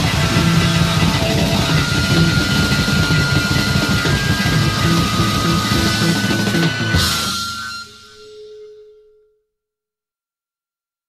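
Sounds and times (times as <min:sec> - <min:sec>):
blues-rock band final chord: 0:00.0 - 0:07.8.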